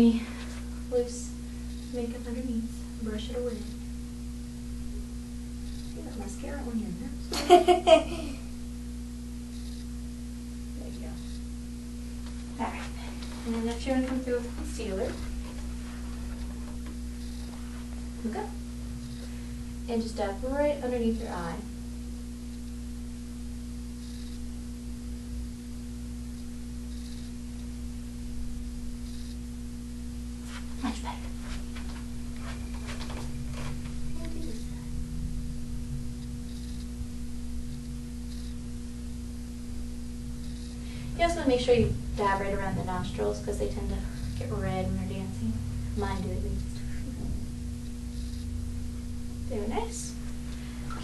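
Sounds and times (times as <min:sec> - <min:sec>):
electrical hum: 0:00.0 - 0:51.0
faint ticks: 0:09.5 - 0:09.9, 0:10.9 - 0:11.5, 0:24.0 - 0:24.4, 0:26.3 - 0:27.7, 0:36.2 - 0:36.9, 0:37.7 - 0:38.6, 0:40.4 - 0:40.8
low rumble: 0:27.4 - 0:51.0.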